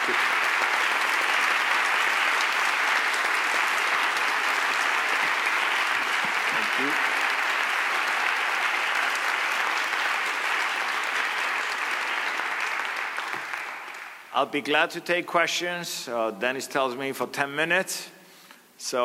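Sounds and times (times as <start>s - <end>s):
audience applauding: 0.0s - 14.3s.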